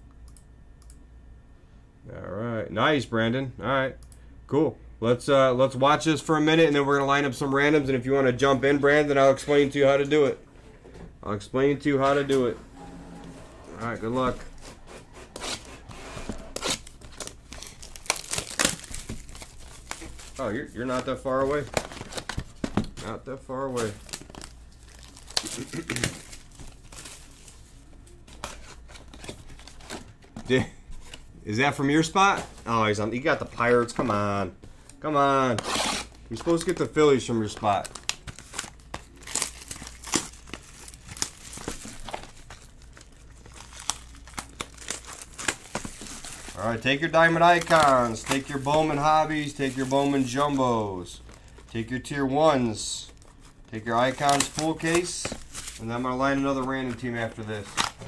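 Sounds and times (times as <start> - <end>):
plastic wrapping crinkling and ripping: 15.3 - 31.2, 34.9 - 58.0.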